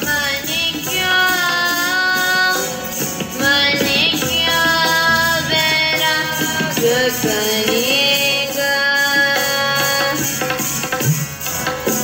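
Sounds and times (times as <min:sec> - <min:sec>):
instrumental accompaniment: 0:00.0 - 0:12.0
young voices singing a hymn: 0:03.4 - 0:09.7.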